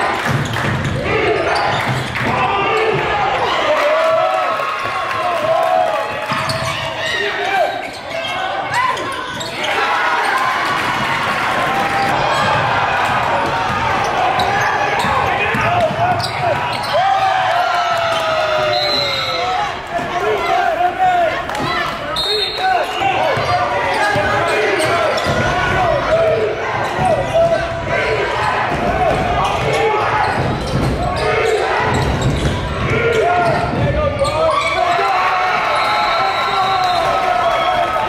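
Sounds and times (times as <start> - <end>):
crowd voices: 0.0 - 38.0
sneakers squeaking: 0.2 - 3.1, 6.2 - 11.0, 11.8 - 17.2, 21.6 - 25.7, 28.4 - 37.1.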